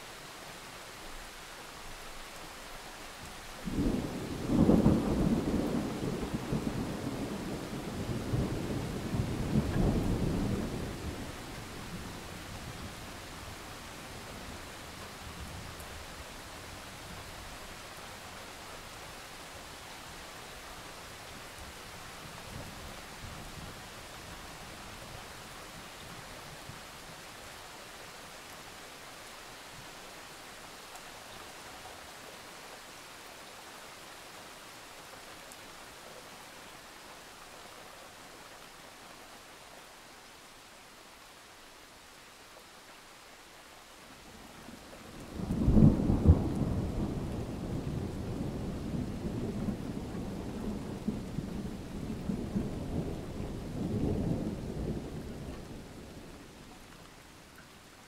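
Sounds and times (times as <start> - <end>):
soft steady rain: 0.0 - 58.0
thunder clap and rumble: 45.2 - 56.0.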